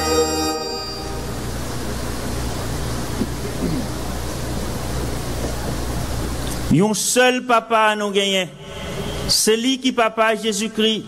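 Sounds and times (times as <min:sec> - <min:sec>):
constant low hum: 0:00.0 - 0:06.7
stadium crowd ambience: 0:01.0 - 0:06.8.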